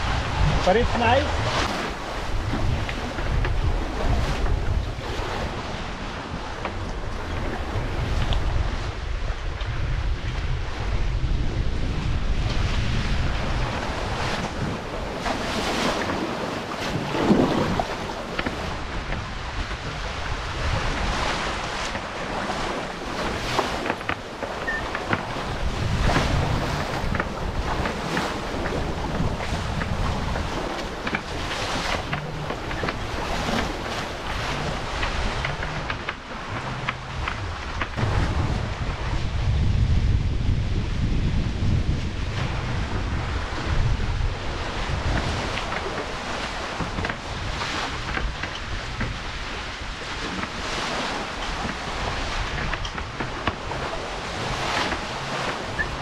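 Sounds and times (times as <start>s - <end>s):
choppy water splashing on hulls: 0.0s - 56.0s
wind buffeting microphone: 0.0s - 56.0s.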